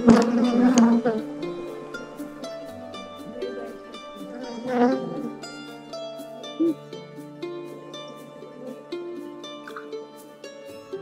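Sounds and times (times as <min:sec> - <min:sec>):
honey bees buzzing: 0:00.0 - 0:09.9
plucked-string background music: 0:00.0 - 0:11.0
bee passing close: 0:03.2 - 0:05.4.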